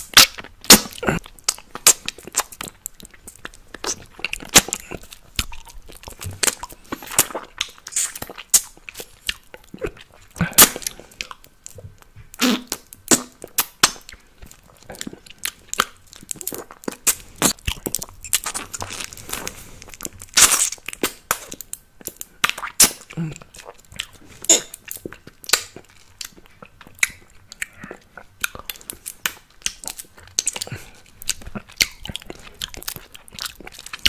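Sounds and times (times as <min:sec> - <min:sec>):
lip smacks and tongue clicks: 0:00.0 - 0:34.0.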